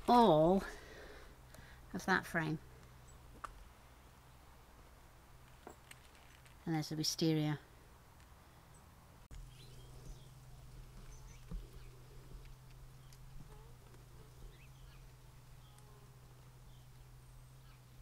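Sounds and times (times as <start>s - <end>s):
steady low hum: 7.7s - 18.0s
bird chirps: 8.6s - 18.0s.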